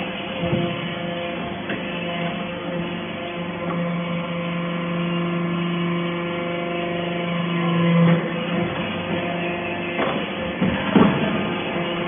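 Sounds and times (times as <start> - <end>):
hydraulic press humming: 0.0 - 12.0.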